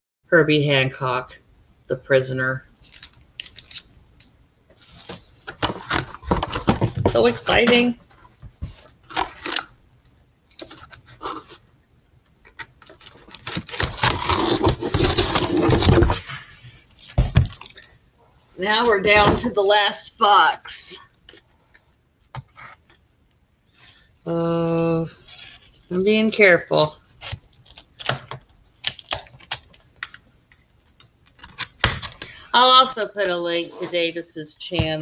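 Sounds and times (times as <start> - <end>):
cardboard box rustling: 4.8 - 7.9, 12.8 - 17.7
cardboard box being opened: 13.0 - 16.5.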